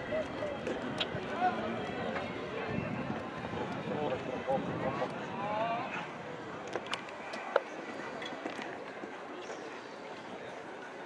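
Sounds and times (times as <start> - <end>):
murmur of spectators' voices: 0.0 - 11.0.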